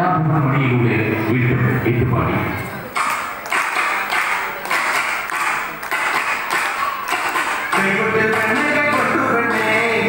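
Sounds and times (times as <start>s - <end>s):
percussion beating sharp hits: 2.8s - 10.0s.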